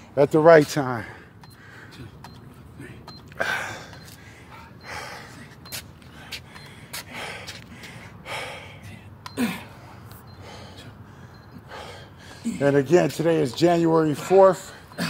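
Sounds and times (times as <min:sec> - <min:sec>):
man breathing hard: 0:01.0 - 0:12.9.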